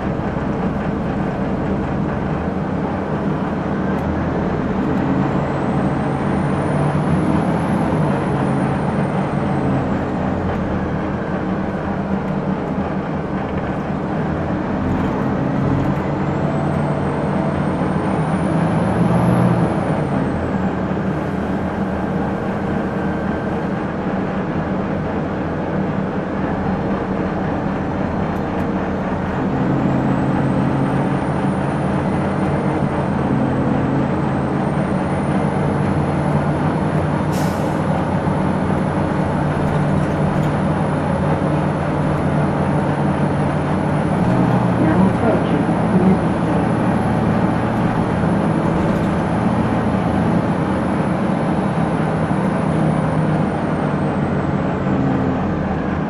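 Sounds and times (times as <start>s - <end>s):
bus diesel engine drone: 0.0s - 56.0s
high transmission whine: 0.0s - 56.0s.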